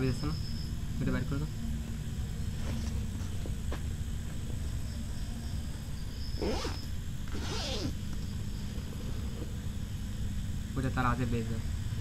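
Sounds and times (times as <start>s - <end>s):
faint insects chirring: 0.0s - 12.0s
steady low rumble: 7.9s - 12.0s.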